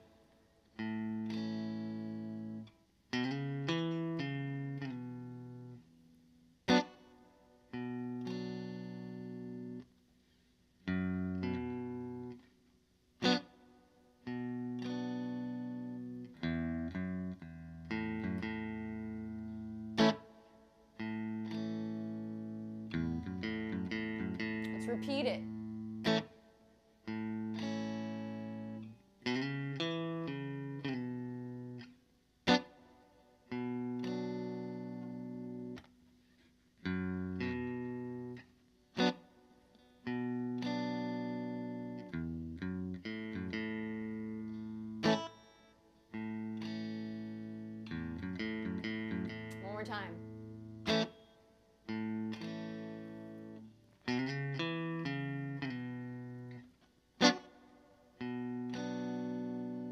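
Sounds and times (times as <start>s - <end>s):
electric guitar playing slow waltz: 0.0s - 10.0s, 10.8s - 12.6s, 13.2s - 59.9s.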